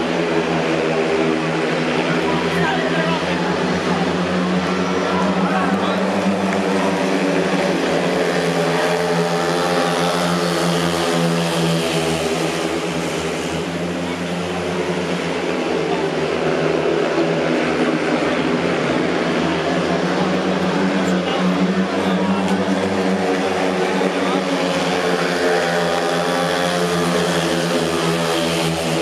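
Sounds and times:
racing motorcycle engines droning: 0.0s - 29.0s.

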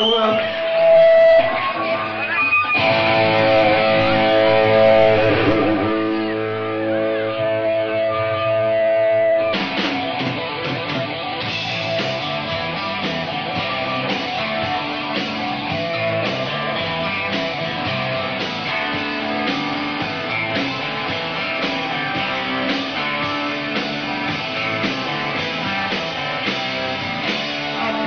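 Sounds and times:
rock music with electric guitar: 0.0s - 28.0s.

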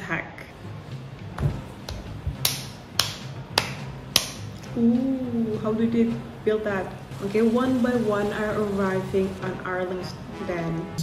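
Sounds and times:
sharp snap-like percussion hits: 1.5s - 4.5s.

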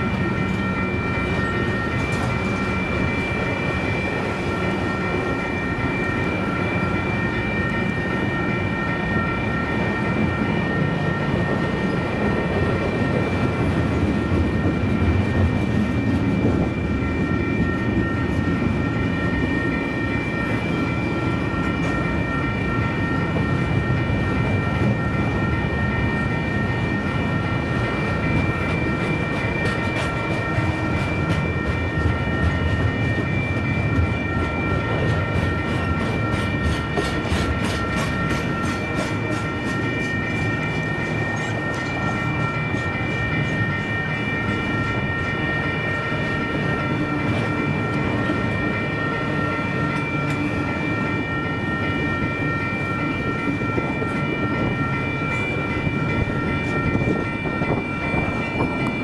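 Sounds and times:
high ringing tone: 0.0s - 59.0s.

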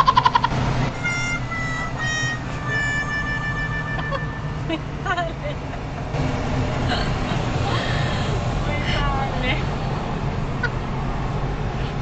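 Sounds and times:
descending held tones: 0.0s - 8.1s
car road and engine rumble: 0.0s - 12.0s.

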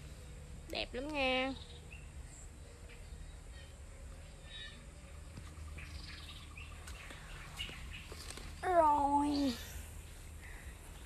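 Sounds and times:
low steady hum: 0.0s - 11.0s
bird chirps: 1.1s - 9.6s.

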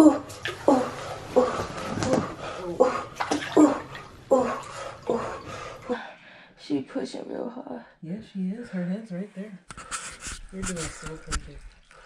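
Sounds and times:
water sloshing and splashing: 0.0s - 6.1s.

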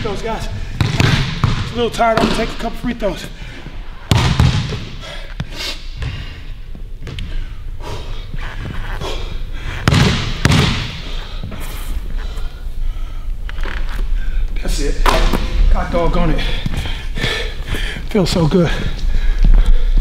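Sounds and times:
basketball bouncing on hardwood floor: 0.8s - 2.4s, 4.1s - 4.8s, 9.8s - 11.0s.

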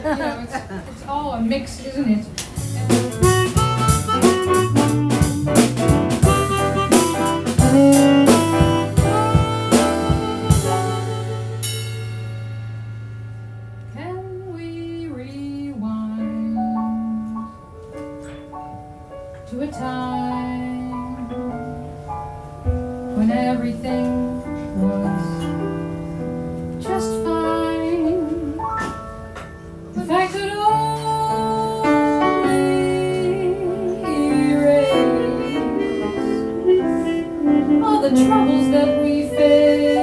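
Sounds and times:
light drums and percussion: 2.4s - 12.5s
piano chords: 2.5s - 40.0s
harmonica long notes with vibrato: 3.2s - 5.6s, 6.2s - 11.9s, 34.8s - 40.0s
woman singing: 14.0s - 17.6s, 19.5s - 21.6s, 23.1s - 25.7s, 26.8s - 28.7s, 30.0s - 40.0s.

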